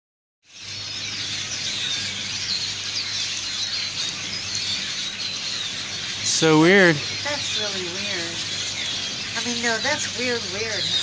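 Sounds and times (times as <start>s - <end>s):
flock of birds chirping: 0.4s - 11.0s.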